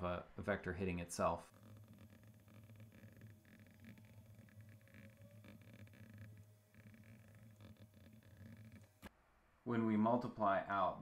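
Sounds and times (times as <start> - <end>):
low steady hum: 1.4 - 10.2
stylus scratching on tablet screen: 1.5 - 9.1.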